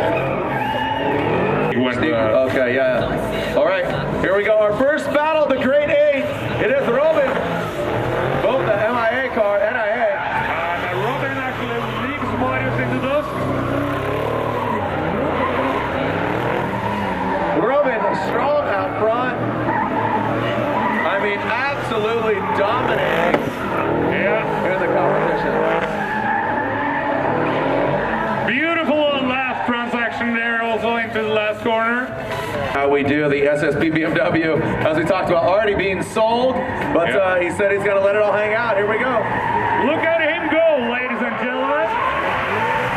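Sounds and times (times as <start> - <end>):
car engines revving hard: 0.0 - 42.9
tyres squealing and skidding: 0.0 - 42.9.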